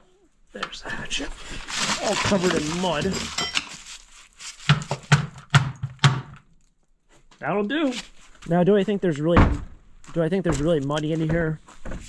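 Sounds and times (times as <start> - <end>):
scrap junk rattling: 1.7 - 3.9.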